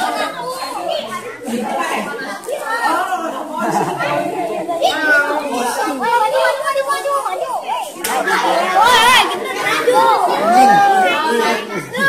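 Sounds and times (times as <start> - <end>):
group of voices talking: 0.0 - 12.0.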